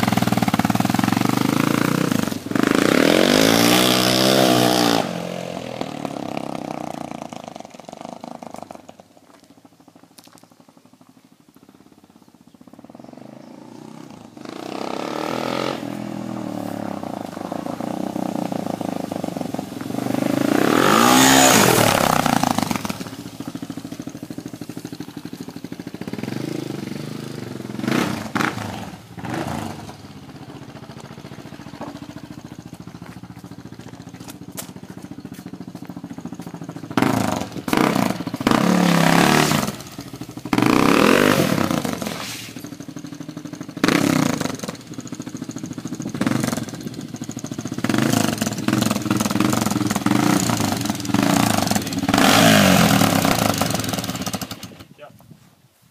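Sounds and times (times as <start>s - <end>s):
dirt bike engine revving: 0.0s - 8.9s, 12.6s - 55.0s.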